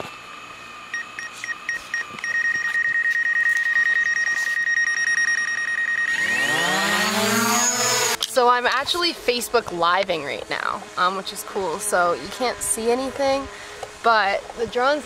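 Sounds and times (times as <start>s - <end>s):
drone motors whining: 0.0s - 15.0s
short beeps: 0.9s - 6.6s.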